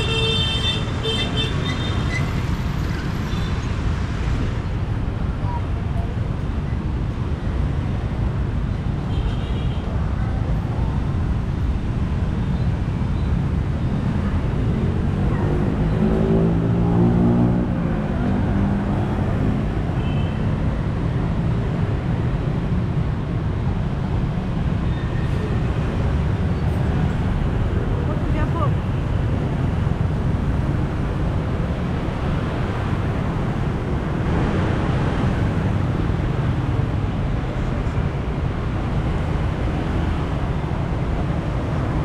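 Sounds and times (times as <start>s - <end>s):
traffic rumble: 0.0s - 42.0s.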